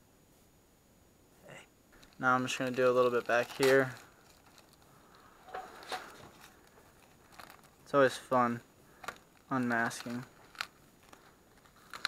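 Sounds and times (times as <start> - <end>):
plastic sheet crinkling: 2.0 - 12.0.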